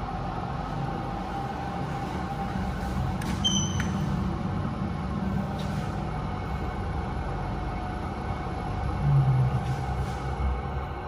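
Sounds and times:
lift rumble and hum: 0.0s - 11.0s.

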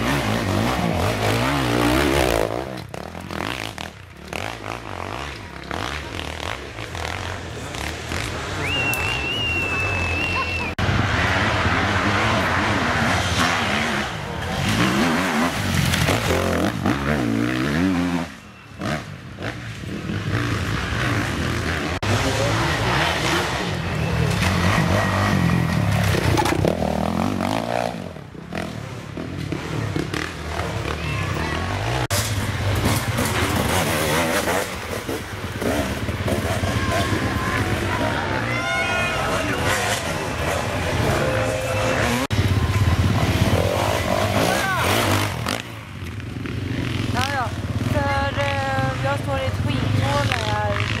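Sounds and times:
motorcycle engines revving past: 0.0s - 51.0s.

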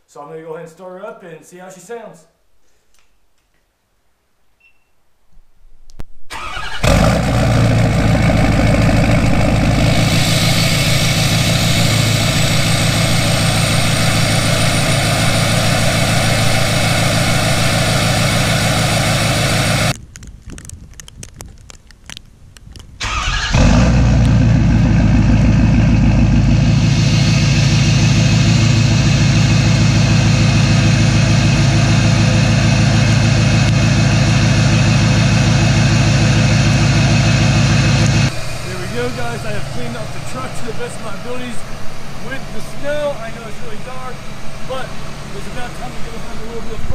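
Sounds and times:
truck engine starting and idling: 6.3s - 20.0s, 23.0s - 46.9s.

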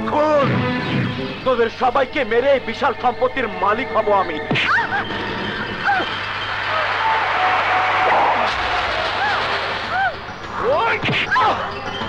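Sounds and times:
loud rushing noise: 6.3s - 10.4s.

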